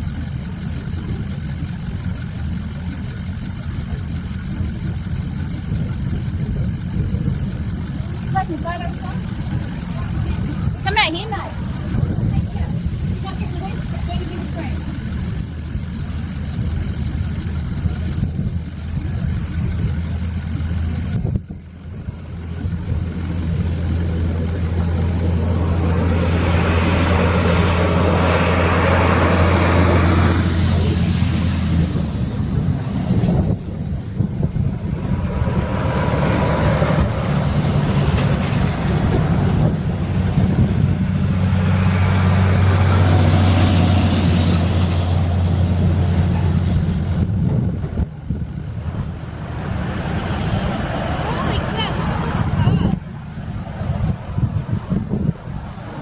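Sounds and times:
trucks driving past: 0:00.0 - 0:56.0
high whine sliding down: 0:03.7 - 0:56.0.

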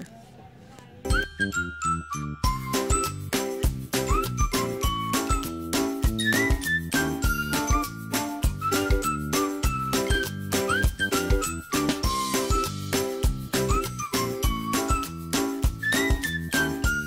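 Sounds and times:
upbeat music with whistle melody: 0:01.1 - 0:17.0.

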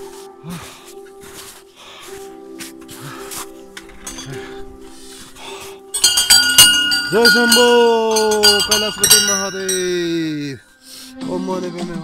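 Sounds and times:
metal bell struck by hand: 0:05.9 - 0:10.4.

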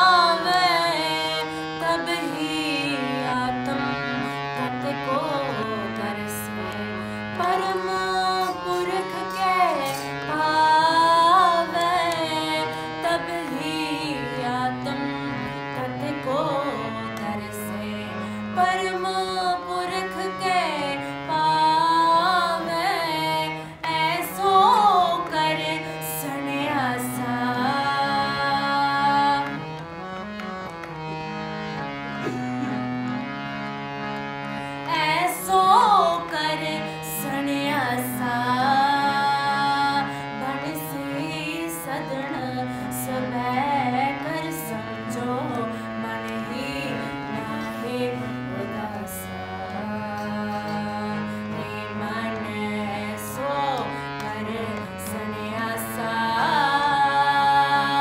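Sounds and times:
woman singing: 0:00.0 - 0:29.8, 0:34.8 - 0:58.0
harmonium chords and drone: 0:00.0 - 0:58.0.

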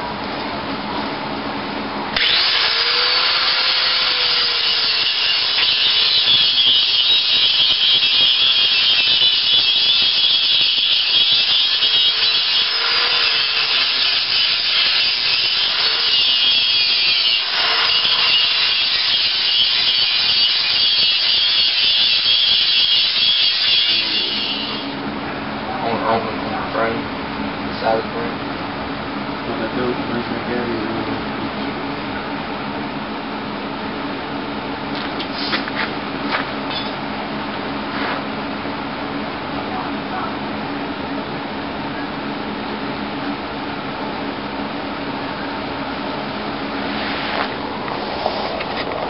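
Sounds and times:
angle grinder cutting metal: 0:02.2 - 0:25.0.

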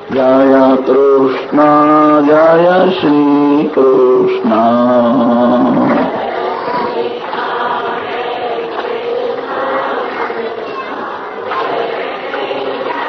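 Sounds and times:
man singing long held notes: 0:00.0 - 0:07.1
chorus of many voices chanting: 0:00.0 - 0:13.0.

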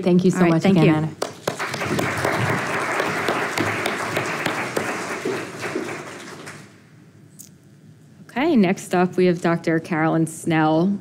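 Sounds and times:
audience applauding: 0:00.8 - 0:06.8.

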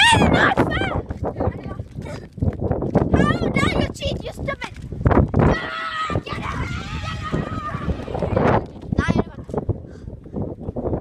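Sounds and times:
boys shouting and laughing: 0:00.0 - 0:02.3, 0:03.1 - 0:04.7, 0:05.4 - 0:09.6.

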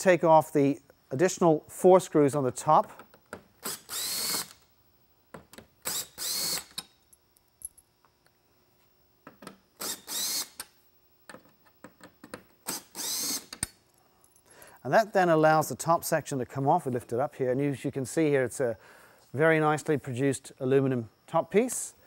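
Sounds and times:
cordless drill motor whine: 0:03.6 - 0:04.6, 0:05.8 - 0:07.0, 0:09.8 - 0:10.7, 0:12.6 - 0:13.6.

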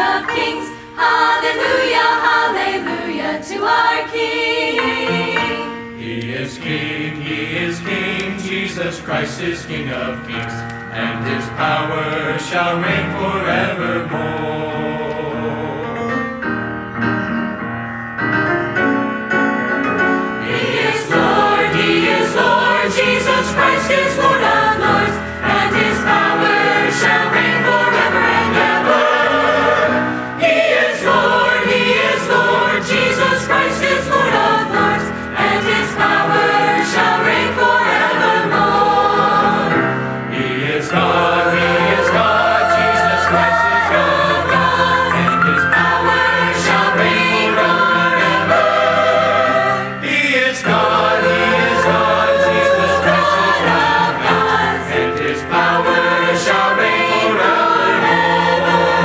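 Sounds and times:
mixed choir singing worship song: 0:00.0 - 0:16.2, 0:20.3 - 0:59.0.

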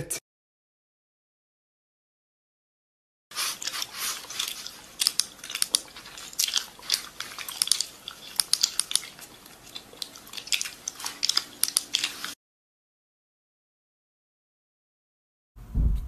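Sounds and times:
fast typing on laptop keyboard: 0:03.7 - 0:12.4.

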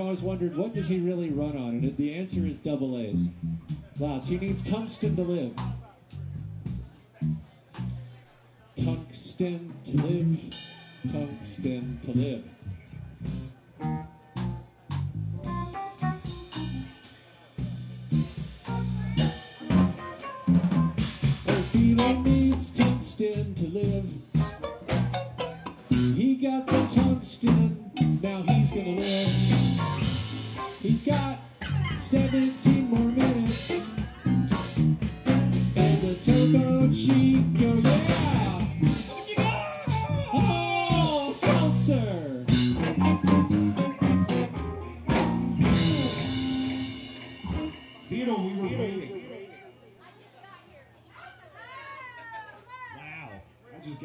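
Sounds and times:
bass guitar: 0:00.0 - 0:08.2, 0:08.8 - 0:49.3
drum kit snare and rimshot hits: 0:13.3 - 0:48.5
bending guitar notes: 0:18.2 - 0:23.2, 0:24.3 - 0:26.2, 0:26.8 - 0:49.4
electric guitars: 0:19.2 - 0:48.9.

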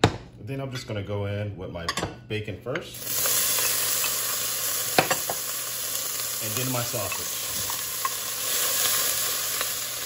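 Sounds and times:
bacon sizzling in a pot: 0:03.0 - 0:10.0.

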